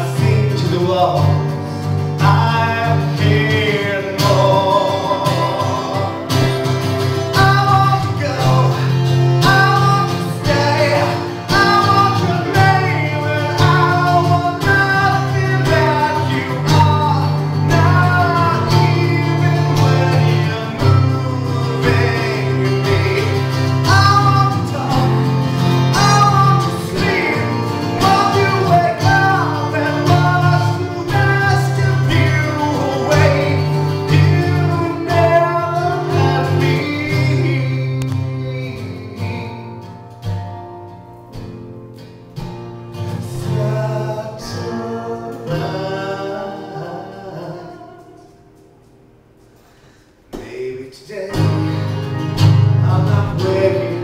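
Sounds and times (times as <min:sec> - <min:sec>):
man singing: 0:00.0 - 0:39.9, 0:43.2 - 0:48.5, 0:50.3 - 0:54.0
keyboard: 0:00.0 - 0:50.3
acoustic guitar: 0:00.0 - 0:54.0.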